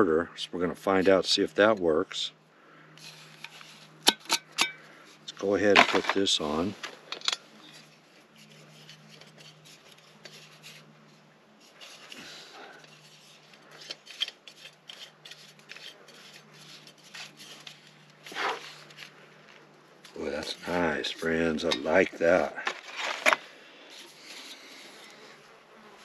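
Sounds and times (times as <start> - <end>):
metal and plastic clicks and scrapes: 5.7 - 10.9, 11.6 - 19.2, 22.5 - 24.6.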